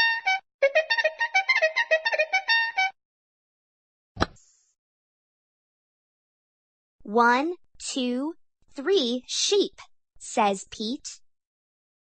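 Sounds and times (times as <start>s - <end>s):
page turn sound effect: 4.2s - 4.7s.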